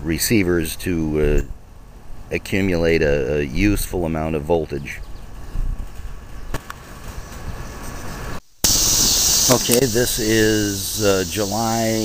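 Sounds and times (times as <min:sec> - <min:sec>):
cicadas droning in trees: 0:05.0 - 0:12.0.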